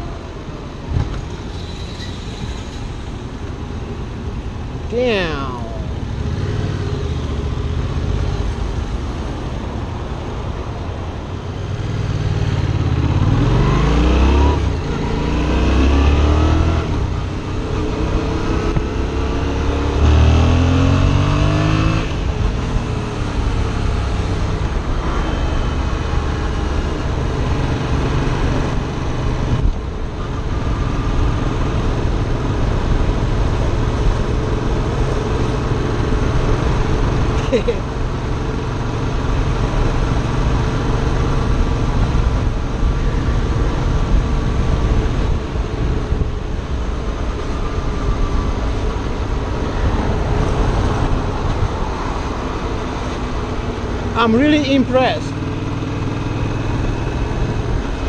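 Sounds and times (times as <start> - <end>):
wind noise: 5.8 - 54.2
motorcycle engine accelerating: 11.6 - 58.0.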